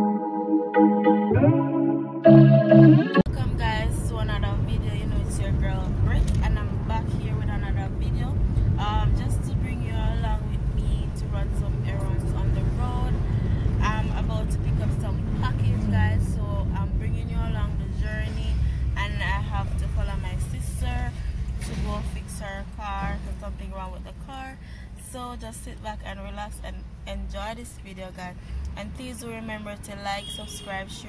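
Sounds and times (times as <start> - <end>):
car engine rumble: 3.2 - 30.0
woman talking: 3.2 - 31.0
road noise in car cabin: 3.3 - 31.0.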